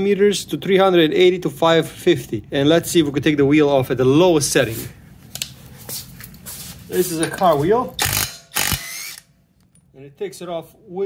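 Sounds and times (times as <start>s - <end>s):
impact wrench hammering: 8.0s - 9.3s.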